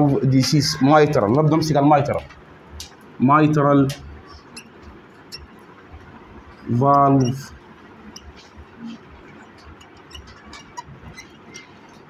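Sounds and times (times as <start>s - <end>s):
marker squeaking on whiteboard: 3.9s - 12.0s.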